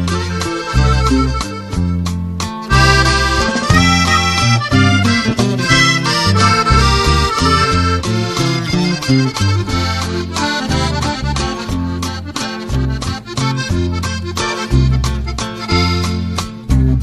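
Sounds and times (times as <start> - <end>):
accordion melody: 0.0 - 17.0
bass line: 0.0 - 17.0.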